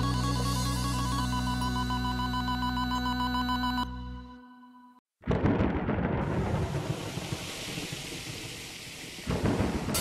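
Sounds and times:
low rumble of thunder: 5.2s - 10.0s
rain hissing: 6.1s - 10.0s.

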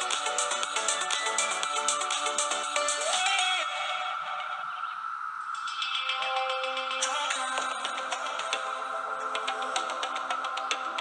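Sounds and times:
synth music with fast beat: 0.0s - 3.8s, 5.6s - 11.0s.

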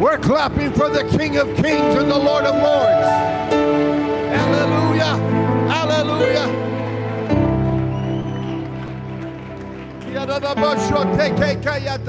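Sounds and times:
sustained keyboard chords: 0.0s - 12.0s
person speaking: 0.6s - 3.4s, 4.2s - 6.8s.

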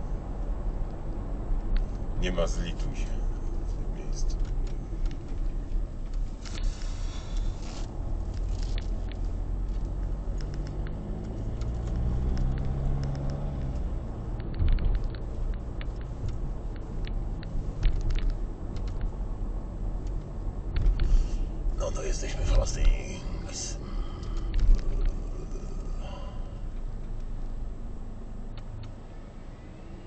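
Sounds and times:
car engine and tyres rumbling: 0.0s - 30.0s
light clicks: 8.8s - 19.1s.

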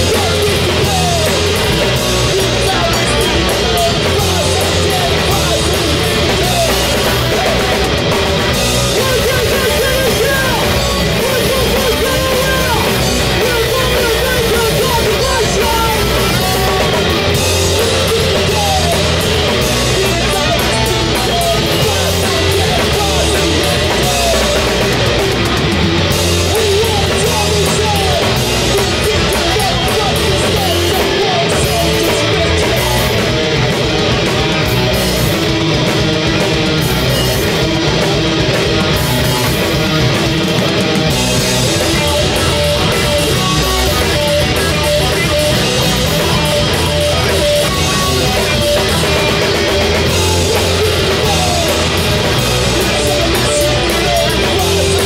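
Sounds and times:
drum kit with crashing cymbals: 0.0s - 55.0s
electric guitars: 0.0s - 55.0s.

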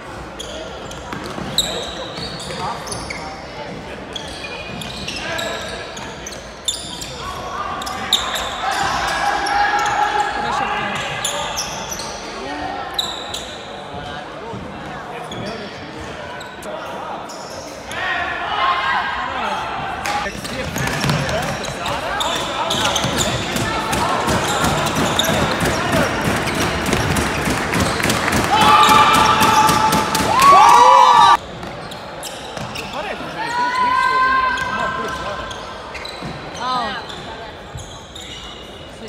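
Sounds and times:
shoe squeaks: 0.3s - 14.1s, 15.2s - 18.0s, 20.7s - 28.1s, 31.4s - 39.0s
players shouting: 22.1s - 31.4s.

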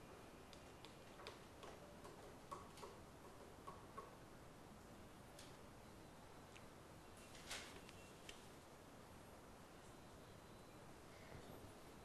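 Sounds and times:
faint room hiss: 0.0s - 12.0s.

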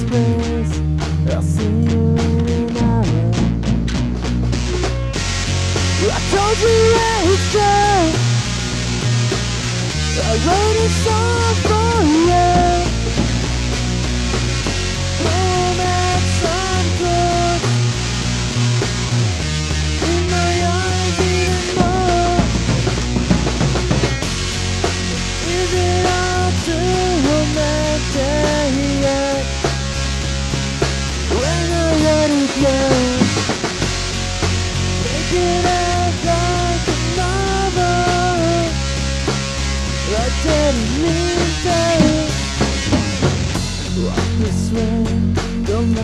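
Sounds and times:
bending sliding guitar melody: 0.0s - 45.6s
bass guitar: 0.0s - 46.0s
drums: 0.0s - 46.0s.

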